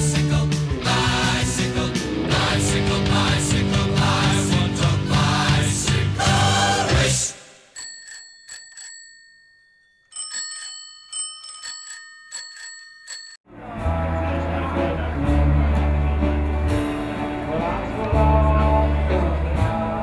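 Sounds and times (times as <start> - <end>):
rock music with guitar: 0.0 - 7.1
bicycle bells ringing: 7.7 - 13.4.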